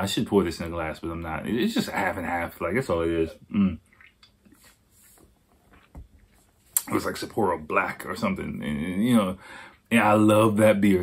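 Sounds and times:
man sipping and swallowing: 0:03.4 - 0:06.8.

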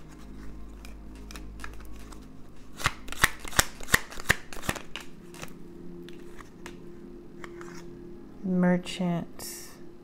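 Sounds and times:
cards being shuffled by hand: 0:00.0 - 0:06.8
cards snapping: 0:00.0 - 0:06.8.

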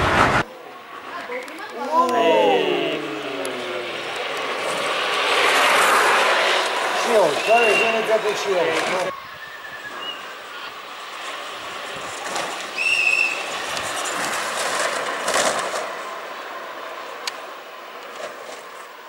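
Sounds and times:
kart wheels rumbling on asphalt: 0:00.0 - 0:19.0
wheels squealing: 0:01.7 - 0:16.3.

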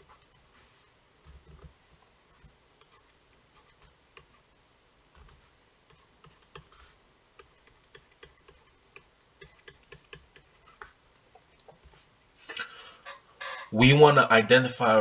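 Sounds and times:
stylus tapping on tablet screen: 0:05.2 - 0:11.0.

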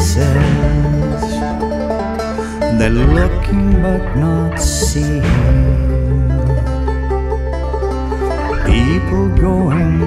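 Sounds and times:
person singing: 0:00.0 - 0:07.1, 0:08.1 - 0:10.0
plucked strings: 0:00.0 - 0:10.0.

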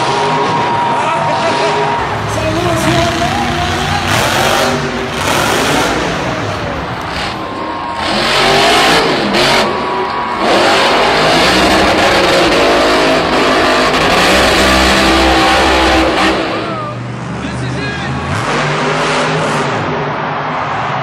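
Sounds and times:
arena crowd din: 0:00.0 - 0:21.0
truck engines revving: 0:00.0 - 0:21.0.

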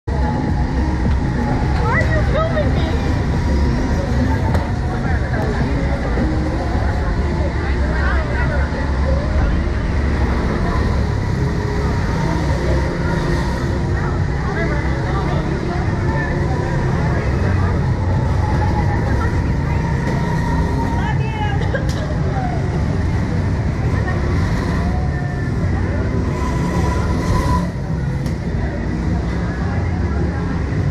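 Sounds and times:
indistinct voices: 0:00.0 - 0:30.9
low rumbling noise: 0:00.0 - 0:30.9.

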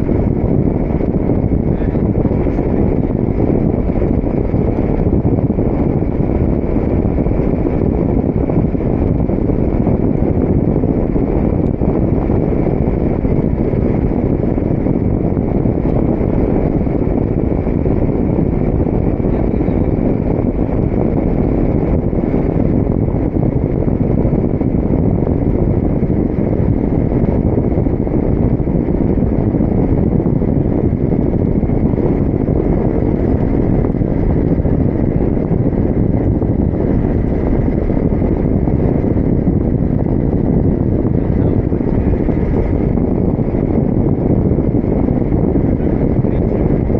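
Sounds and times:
wind rushing over microphone: 0:00.0 - 0:46.9.

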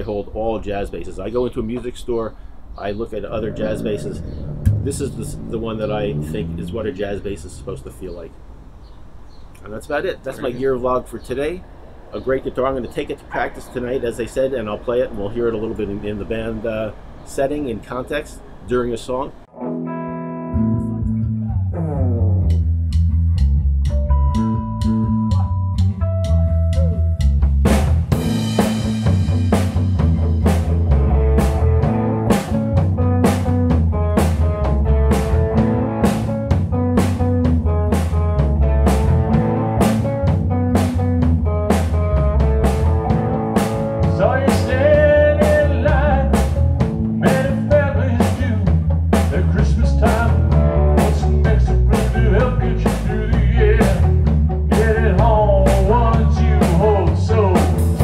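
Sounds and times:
electric guitar notes: 0:03.2 - 0:07.8, 0:19.5 - 0:27.4, 0:28.1 - 0:58.0
steady bass line: 0:03.2 - 0:07.8, 0:20.0 - 0:58.0
drum kit beat: 0:22.4 - 0:58.0.

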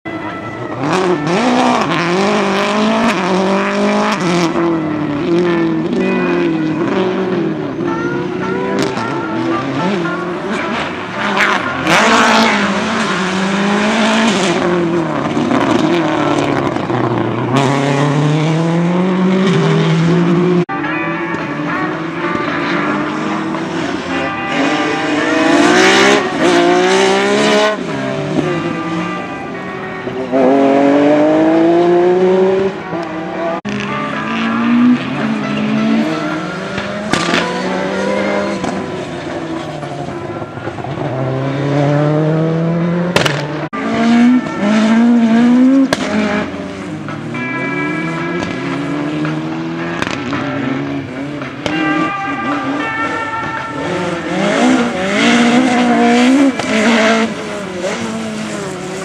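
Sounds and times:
rally car engines revving: 0:00.1 - 0:59.0.

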